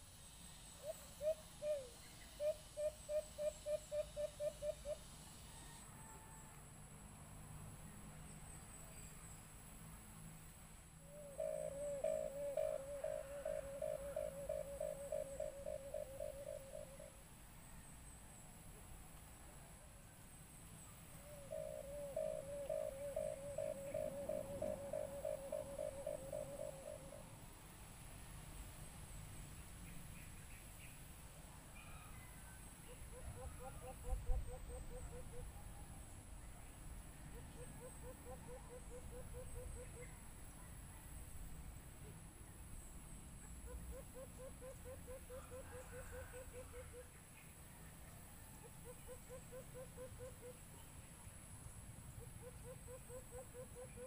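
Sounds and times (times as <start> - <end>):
dove hooting call: 0.7 - 6.5, 11.0 - 17.2, 21.1 - 27.4, 32.8 - 40.7, 43.4 - 47.2, 48.4 - 50.8, 52.1 - 54.0.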